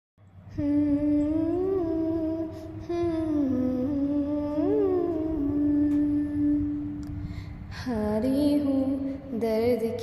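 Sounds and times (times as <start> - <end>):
person humming a held note: 0.6 - 7.0.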